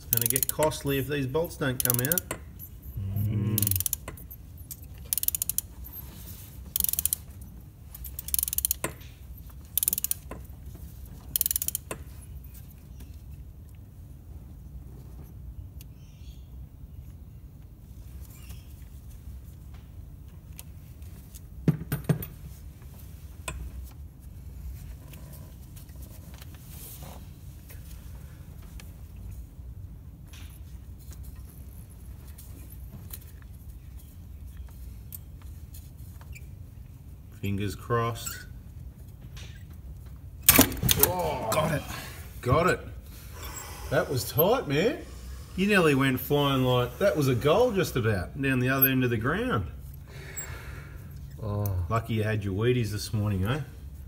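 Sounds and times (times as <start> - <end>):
hand ratchet clicking: 0.0 - 0.8, 1.7 - 2.4, 3.6 - 5.7, 6.7 - 7.3, 8.0 - 9.0, 9.7 - 10.4, 11.3 - 12.0
steady low hum: 0.0 - 21.6, 22.2 - 54.0.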